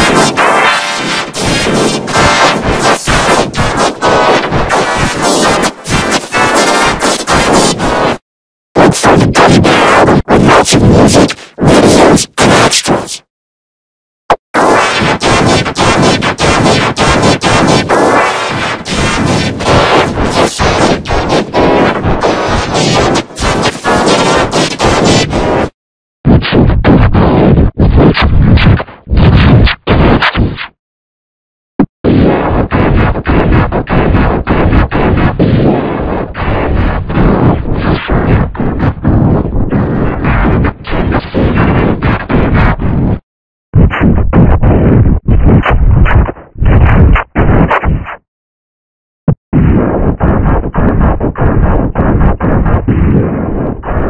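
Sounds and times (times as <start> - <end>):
loud distorted blast noise: 0.0 - 8.2, 8.8 - 13.3, 14.6 - 30.4, 32.0 - 42.7, 43.8 - 47.9.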